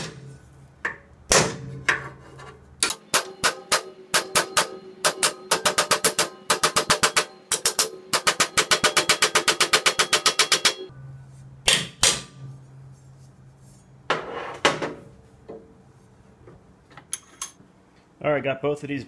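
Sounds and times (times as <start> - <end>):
hammer striking steel bar: 2.8 - 10.9, 11.6 - 12.5.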